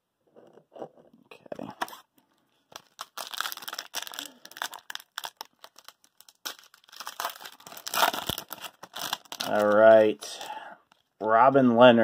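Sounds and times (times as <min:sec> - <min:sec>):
foil wrapper crinkling and tearing: 0:02.7 - 0:11.1.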